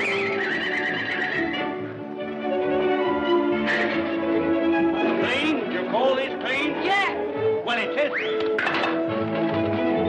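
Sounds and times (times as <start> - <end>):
orchestral film music: 0.0 - 10.0.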